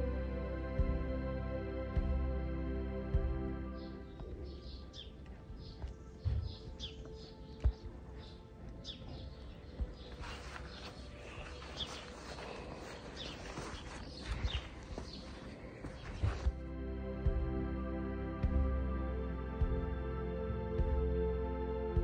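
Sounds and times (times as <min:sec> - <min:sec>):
small birds chirping: 0:03.1 - 0:16.6.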